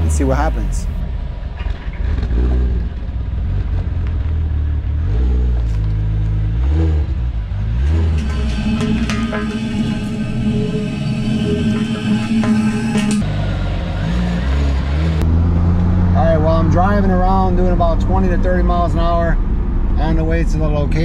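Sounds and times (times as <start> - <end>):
car engine rumbling: 0.0 - 21.0
background music with sustained tones: 8.1 - 13.2.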